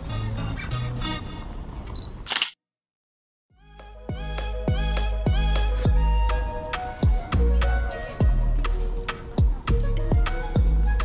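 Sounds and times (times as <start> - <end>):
faint street ambience: 0.0 - 2.5, 3.7 - 11.0
camera shutter click: 1.9 - 2.6
background music: 3.6 - 11.0.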